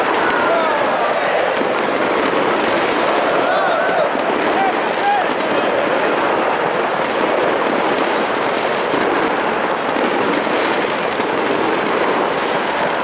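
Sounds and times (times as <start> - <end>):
crowd din: 0.0 - 13.0
firecrackers crackling: 0.0 - 13.0.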